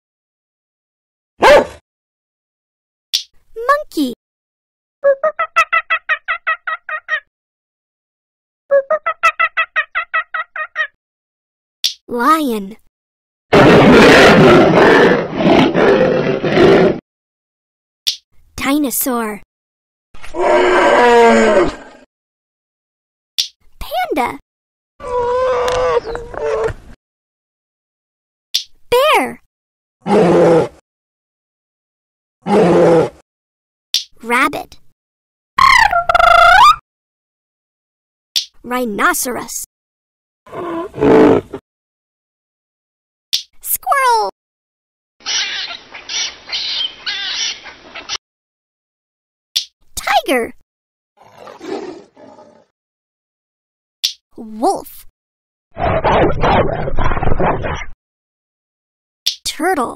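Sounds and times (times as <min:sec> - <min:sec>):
lion roaring: 0:13.5 - 0:17.0, 0:20.2 - 0:22.0, 0:30.0 - 0:30.8, 0:32.4 - 0:33.2, 0:40.5 - 0:41.6, 0:51.2 - 0:52.7, 0:55.8 - 0:57.8.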